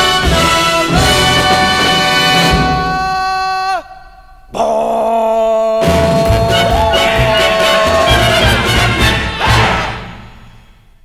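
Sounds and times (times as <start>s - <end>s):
orchestra with brass chord: 0.0s - 2.8s, 6.2s - 10.4s.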